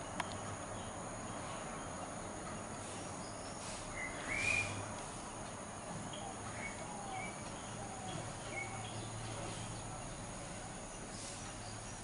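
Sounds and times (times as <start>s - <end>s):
steady low hum: 0.0s - 12.0s
short bird chirps: 3.9s - 4.8s.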